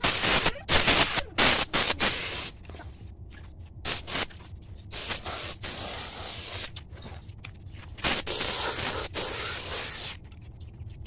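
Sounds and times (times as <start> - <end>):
spray gun hissing in bursts: 0.0 - 2.6, 3.9 - 4.3, 4.9 - 6.7, 8.0 - 10.2.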